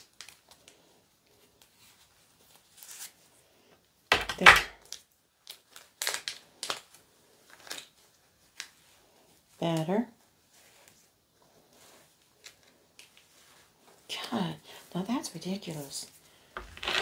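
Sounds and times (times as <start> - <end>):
doll handling rustles: 0.0 - 3.5, 4.4 - 14.1, 14.9 - 17.0.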